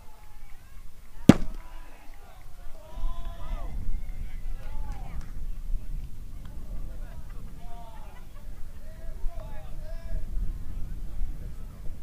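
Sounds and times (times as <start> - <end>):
baseball striking with sharp crack: 1.3 - 1.8.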